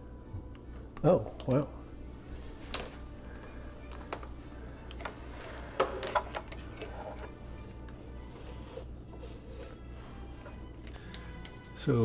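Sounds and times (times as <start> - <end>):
steady low hum: 0.0 - 11.8
fork scraping plastic container: 8.2 - 10.6.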